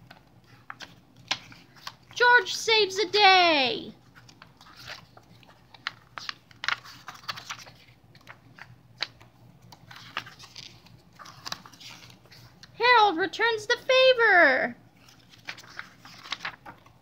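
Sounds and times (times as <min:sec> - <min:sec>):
book pages flapping: 0:00.0 - 0:02.5, 0:04.0 - 0:12.8, 0:14.9 - 0:17.0.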